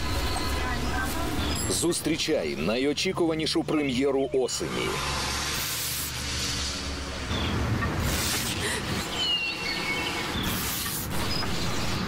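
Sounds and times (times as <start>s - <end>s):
birds chirping: 0.0s - 4.9s, 7.1s - 12.0s
outdoor background noise: 0.0s - 12.0s
brief hiss: 8.0s - 8.8s.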